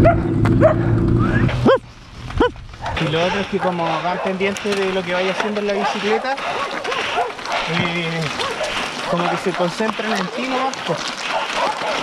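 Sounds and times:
dog barking: 0.0s - 0.9s, 2.4s - 4.6s, 5.5s - 10.6s, 11.2s - 12.0s
low rumble: 0.0s - 3.1s.

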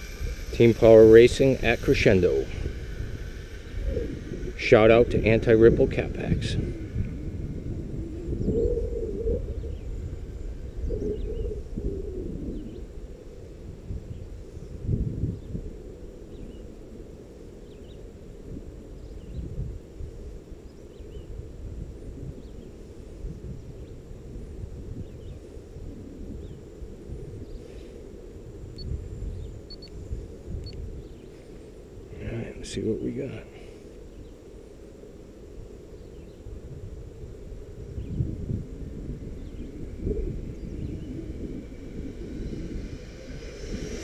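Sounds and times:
wind buffeting microphone: 0.0s - 44.0s
faint bird chirps: 8.1s - 12.9s.

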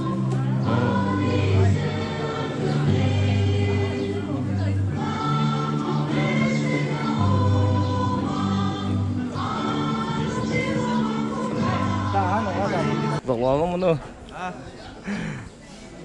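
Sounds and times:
voices singing in chorus: 0.0s - 13.2s.

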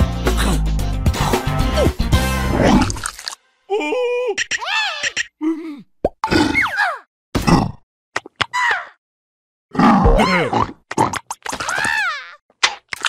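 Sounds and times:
cartoon character grunts and laughs: 3.7s - 7.1s, 9.9s - 10.7s.

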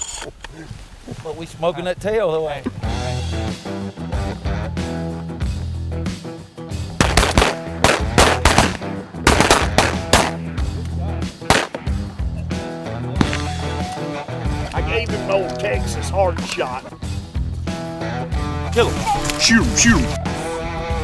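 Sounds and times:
background music: 2.7s - 21.0s
shotgun fire: 7.0s - 10.4s, 11.4s - 11.9s.

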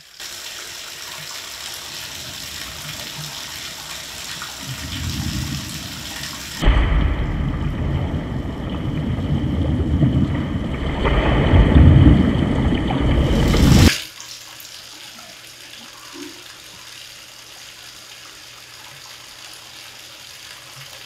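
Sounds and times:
water running from bathtub spout: 0.0s - 6.6s, 8.6s - 21.0s
deep muffled rush of water: 1.8s - 13.9s
low rumble: 4.6s - 13.9s.

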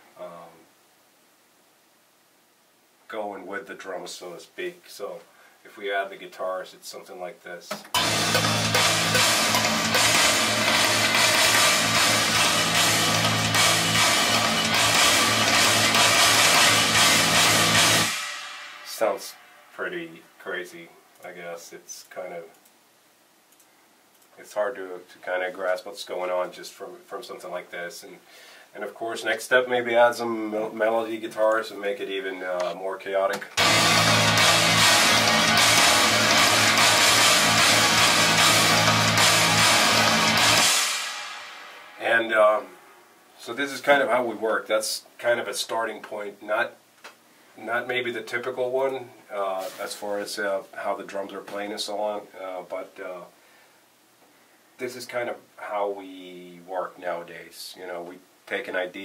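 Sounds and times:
sampled drum kit: 7.6s - 22.3s, 28.4s - 46.3s, 47.1s - 53.2s
heavy guitar hits: 7.9s - 19.7s, 33.6s - 43.1s
heavy metal song: 8.0s - 19.8s, 33.6s - 43.1s.

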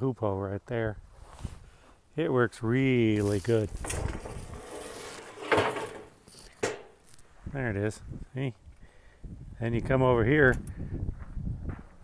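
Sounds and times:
scraping rattle: 3.2s - 7.2s.

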